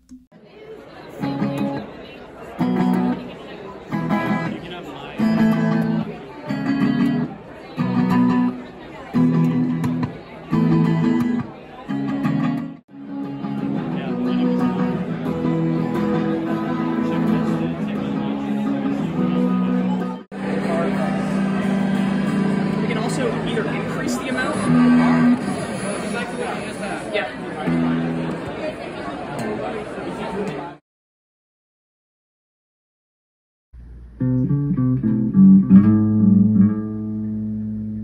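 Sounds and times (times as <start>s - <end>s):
guitar chords through effects pedal: 2.6s - 3.3s, 3.9s - 4.6s, 5.2s - 25.7s, 33.8s - 38.0s.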